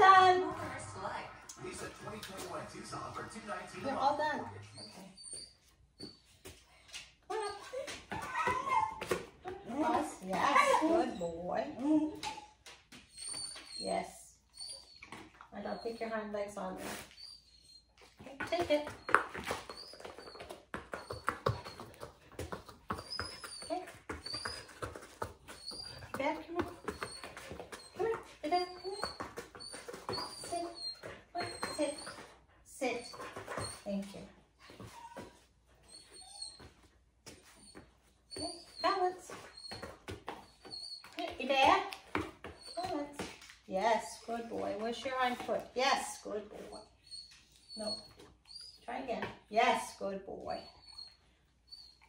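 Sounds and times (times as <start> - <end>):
dog whimpering: 3.8 - 6.4, 7.3 - 16.3, 17.0 - 43.3, 46.5 - 48.9, 50.5 - 52.0.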